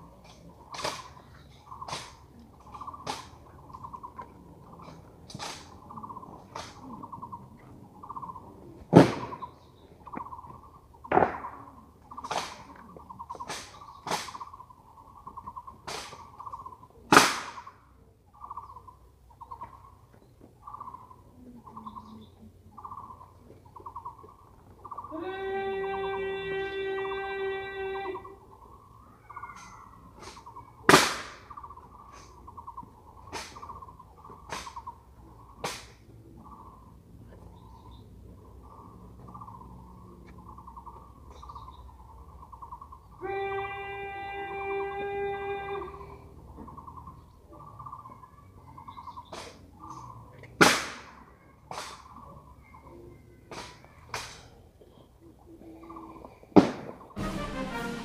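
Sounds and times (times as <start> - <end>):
steady horn-like tone: 57.2 - 58.0.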